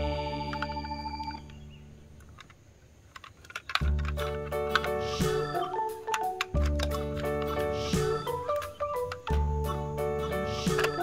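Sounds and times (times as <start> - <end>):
background music chord: 0.0 - 2.2, 4.2 - 11.0
plastic toy truck clicks: 2.2 - 9.7, 10.3 - 11.0.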